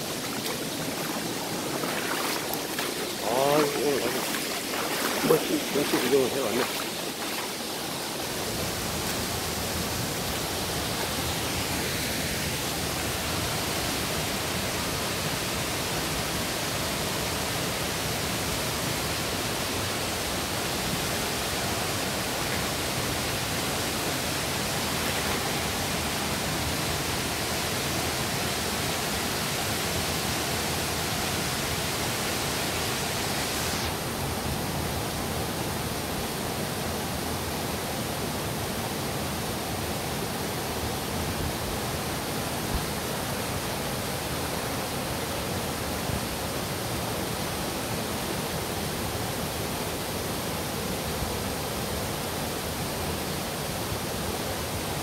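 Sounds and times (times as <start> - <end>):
waterfall pouring: 0.0 - 9.3.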